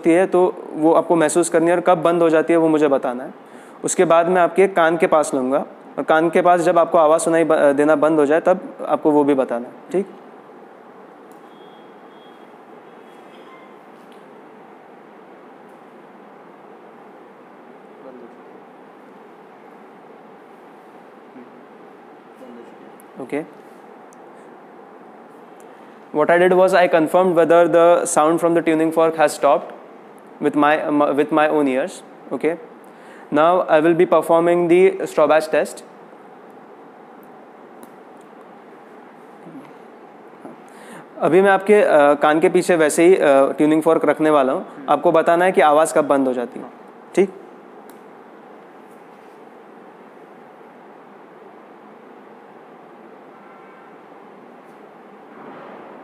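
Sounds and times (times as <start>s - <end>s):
low room hiss: 0.0s - 56.0s
faint thin high tones: 11.4s - 13.9s, 53.3s - 54.0s.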